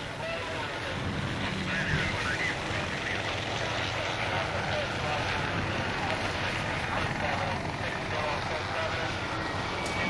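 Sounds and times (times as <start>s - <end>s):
steady vehicle rumbling: 0.0s - 10.0s.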